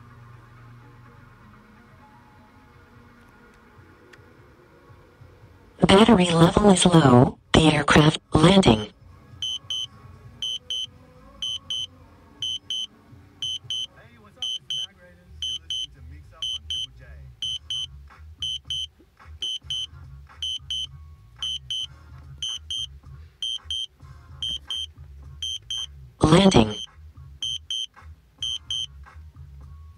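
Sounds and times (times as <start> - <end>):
drone alert double beeps: 9.4 - 28.9
low music beat: 15.4 - 23.8, 24.4 - 26.8.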